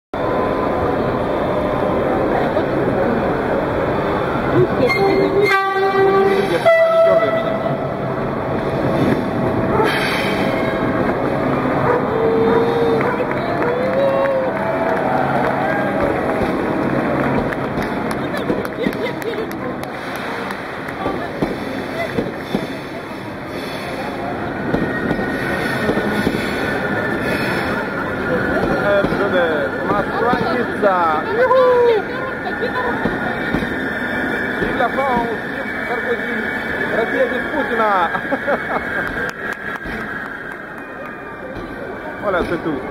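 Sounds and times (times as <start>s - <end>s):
crowd voices: 0.2s - 42.9s
train wheels rumbling on rails: 0.2s - 42.9s
train wheels squealing: 22.4s - 39.2s.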